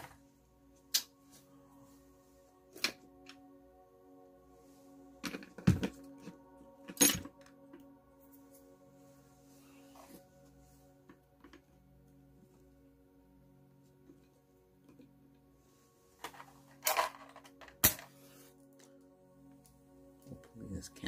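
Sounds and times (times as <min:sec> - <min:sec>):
faint ambient music: 0:00.0 - 0:21.0.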